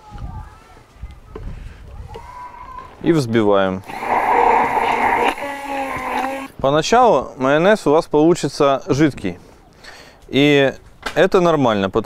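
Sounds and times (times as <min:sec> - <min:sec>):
hand blender whirring: 0:03.8 - 0:06.5.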